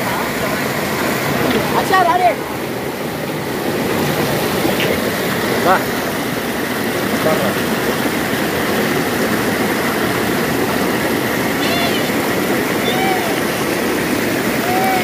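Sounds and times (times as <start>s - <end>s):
small waterfall rushing: 0.0s - 15.0s
short high calls: 11.6s - 13.6s.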